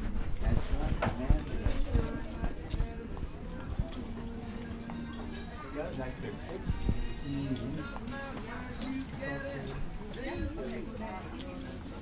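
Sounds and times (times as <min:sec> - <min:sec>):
footsteps on hard floor: 0:00.0 - 0:04.2
diners chattering: 0:00.1 - 0:12.0.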